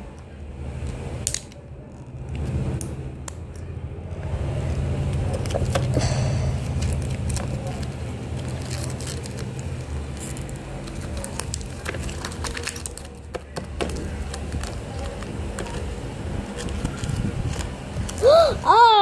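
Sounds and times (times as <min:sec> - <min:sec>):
steady low rumble: 0:00.0 - 0:18.7
plastic clicks and rustles: 0:07.0 - 0:18.2.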